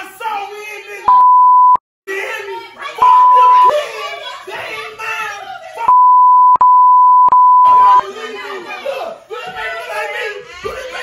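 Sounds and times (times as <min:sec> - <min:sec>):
censor bleep: 0:01.1 - 0:01.8, 0:03.0 - 0:03.7, 0:05.9 - 0:08.0
loud excited voices: 0:02.1 - 0:05.9, 0:07.7 - 0:11.0.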